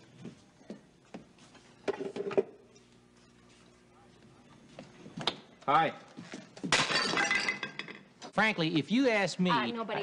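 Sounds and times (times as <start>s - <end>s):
plate shattering on floor: 6.7s - 8.0s
pieces clinking and ringing: 6.8s - 8.1s.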